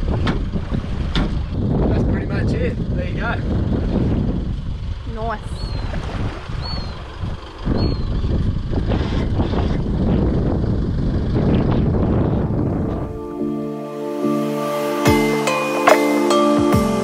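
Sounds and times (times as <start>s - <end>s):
wind on the microphone: 0.0s - 13.3s
background music with sustained notes: 12.6s - 17.0s.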